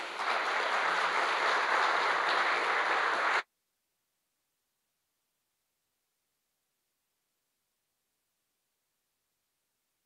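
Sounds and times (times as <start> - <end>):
audience applauding: 0.0 - 3.4.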